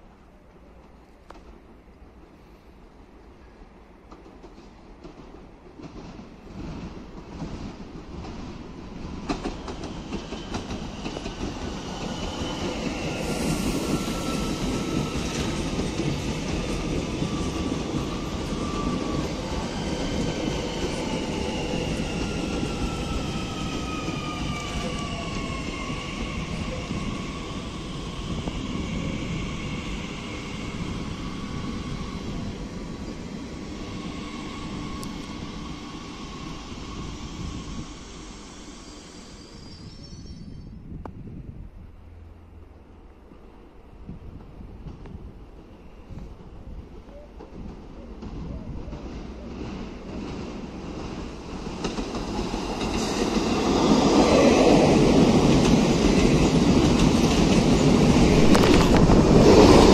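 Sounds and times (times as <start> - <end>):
electric train rumble: 4.4 - 59.9.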